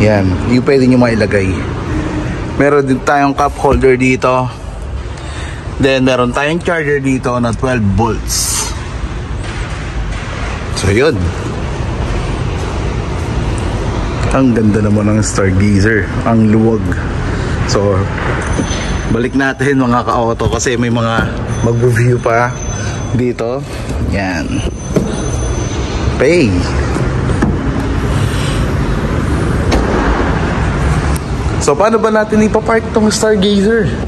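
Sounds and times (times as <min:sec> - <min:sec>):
steady rushing noise: 0:25.8 - 0:34.0.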